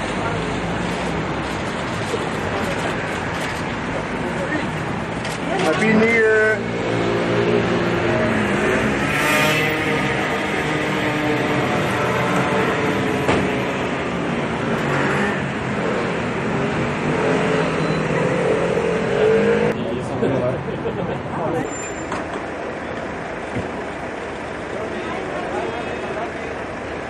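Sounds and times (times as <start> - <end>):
voices: 17.8 - 27.0.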